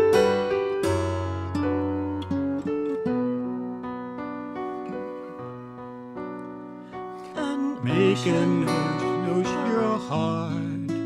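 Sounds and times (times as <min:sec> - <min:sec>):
acoustic guitar slow melody: 0:00.0 - 0:11.0.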